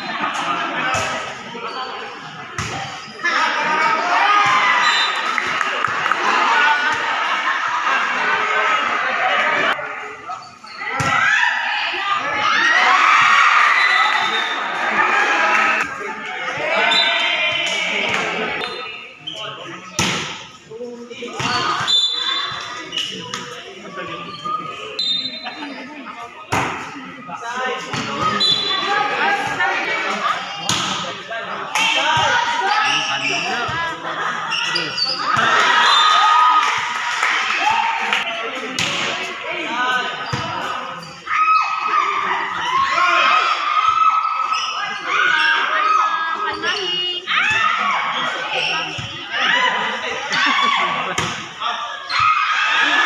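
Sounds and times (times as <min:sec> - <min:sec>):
people shouting and cheering: 0:00.0 - 0:53.0.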